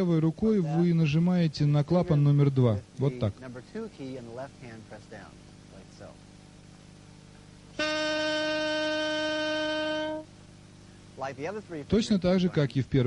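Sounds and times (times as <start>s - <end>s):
saxophone sustained note: 7.7s - 10.6s.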